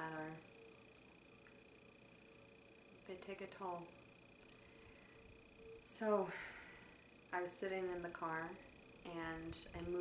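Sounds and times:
woman speaking: 0.0 - 0.4, 3.0 - 4.0, 5.9 - 6.4, 7.3 - 10.0
faint high-pitched whine: 0.0 - 10.0.

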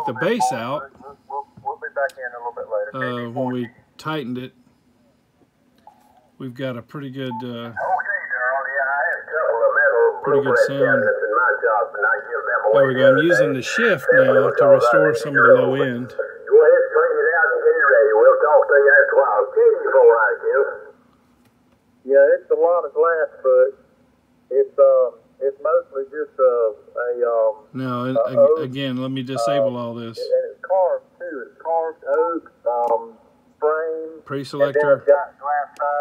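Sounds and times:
person talking over radio: 0.0 - 4.4, 6.8 - 20.9, 24.5 - 36.0.

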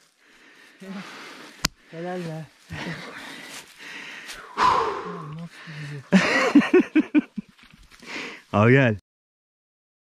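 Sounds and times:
man gasping loudly: 2.8 - 6.1
man humming low: 4.6 - 6.1.

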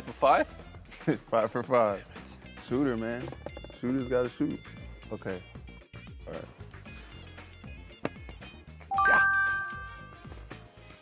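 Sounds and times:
background music: 0.0 - 11.0
rising three-note chime: 8.9 - 10.2.

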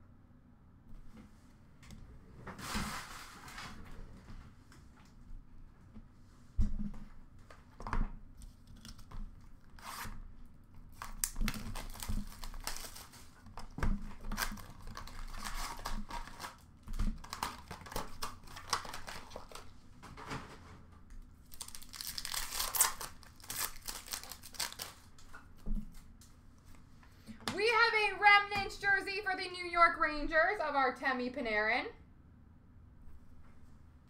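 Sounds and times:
foil wrappers crinkling and tearing: 10.9 - 19.7, 21.4 - 25.3.

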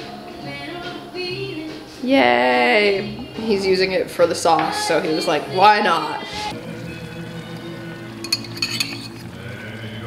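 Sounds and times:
soft background music: 0.0 - 10.0
utensil clinking against bowl: 7.6 - 9.3.

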